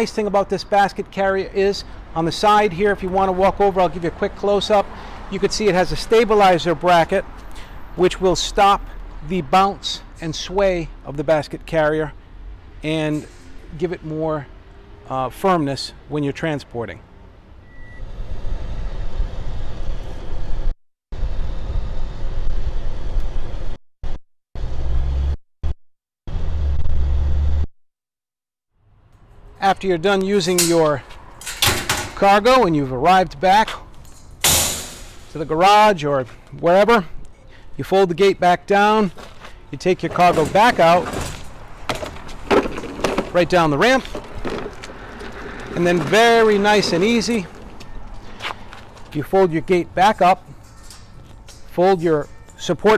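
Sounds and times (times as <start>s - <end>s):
mower wheels rattling on steel mesh: 30.4s - 32.6s, 34.0s - 35.9s, 39.8s - 47.7s, 50.0s - 52.9s
pickup truck engine rumble: 39.2s - 49.2s.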